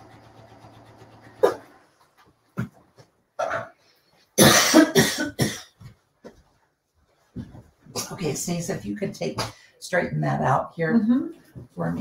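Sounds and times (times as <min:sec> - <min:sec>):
sewing machine stitching: 0:00.0 - 0:02.0
person coughing: 0:03.4 - 0:03.8, 0:04.4 - 0:05.8.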